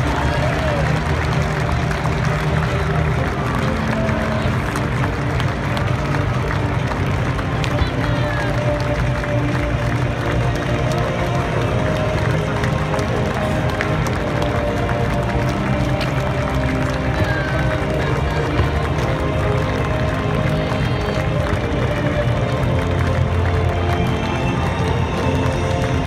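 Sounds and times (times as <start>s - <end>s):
large crowd talking: 0.0s - 26.0s
music over public address system: 0.0s - 26.0s.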